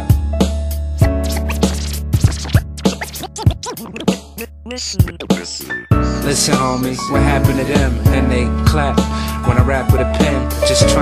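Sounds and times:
hip hop beat: 0.1 - 11.0
turntable scratching: 1.0 - 5.8.

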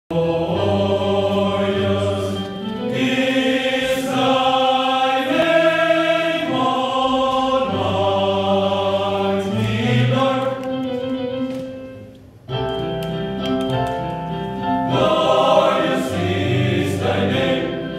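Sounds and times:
men's choir singing: 0.1 - 11.0, 14.9 - 17.9.

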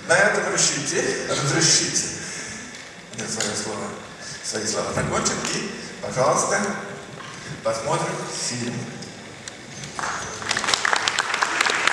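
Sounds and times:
audience applause: 9.8 - 11.9.

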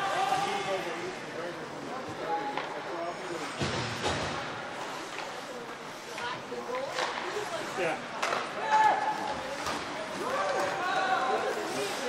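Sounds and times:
steady hiss of hockey play: 0.0 - 12.0.

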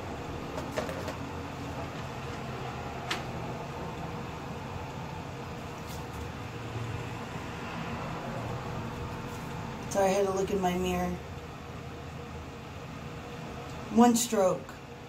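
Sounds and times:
electric fan running: 0.0 - 15.0.

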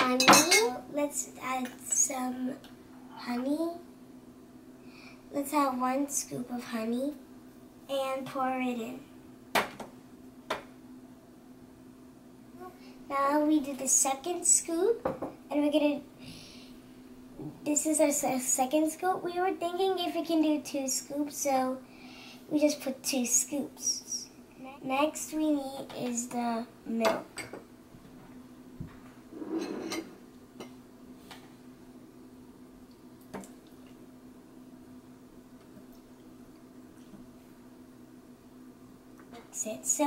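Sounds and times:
faint steady hum: 0.0 - 40.0
glass scraping on table: 29.3 - 30.2.

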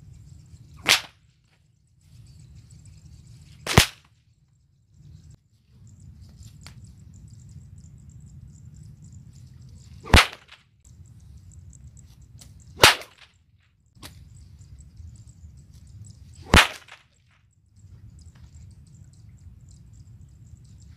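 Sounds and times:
whip cracking: 0.8 - 1.2, 3.6 - 4.1, 10.0 - 10.6, 12.4 - 13.3, 16.4 - 17.2.

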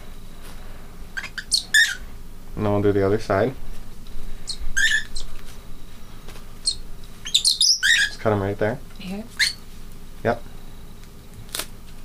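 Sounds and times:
bird chirps: 1.2 - 2.0, 4.5 - 5.3, 6.6 - 8.2, 9.4 - 9.6.

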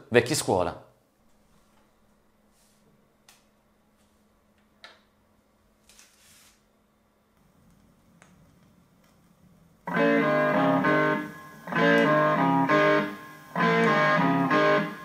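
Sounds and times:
rock music from record: 9.9 - 15.0.

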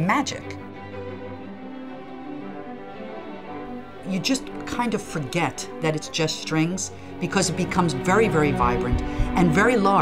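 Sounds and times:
string orchestra bowed chords: 0.0 - 10.0.

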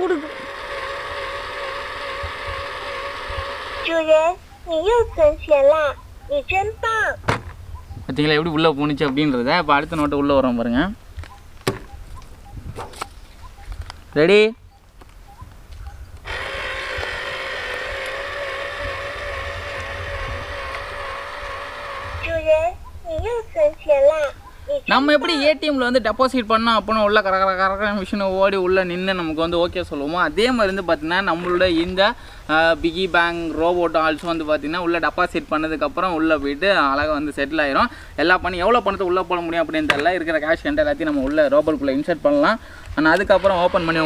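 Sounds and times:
buzzy electronic tone from toy speaker: 0.0 - 4.4, 17.9 - 22.8
small electric motor whine: 0.0 - 4.5, 16.2 - 22.8, 43.0 - 44.0.

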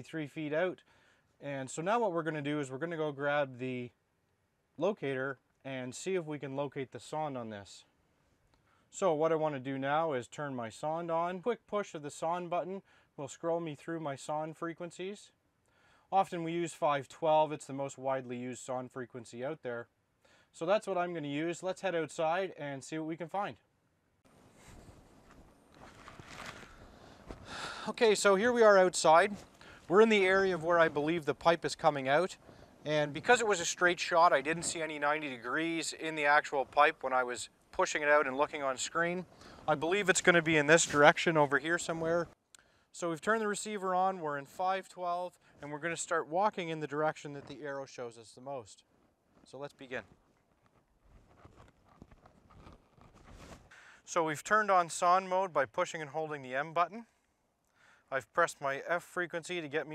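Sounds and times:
footsteps in snow: 24.3 - 35.6, 38.5 - 42.3, 49.4 - 53.7
soft rustles: 24.3 - 37.1, 37.8 - 42.4, 48.8 - 53.8.

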